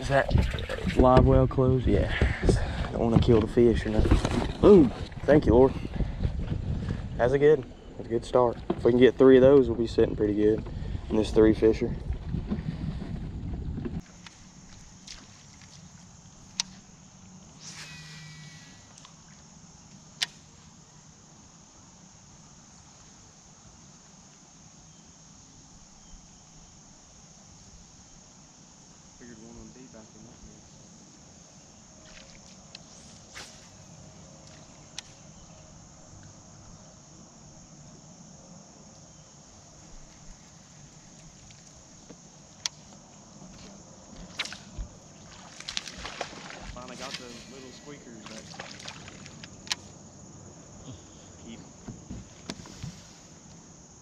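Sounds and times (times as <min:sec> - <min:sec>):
high-pitched insect chorus: 0:00.0 - 0:13.0, 0:14.0 - 0:54.0.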